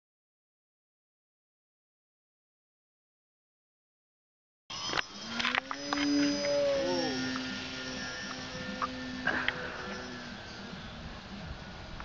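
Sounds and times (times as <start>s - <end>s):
model plane motor whining: 4.7s - 12.0s.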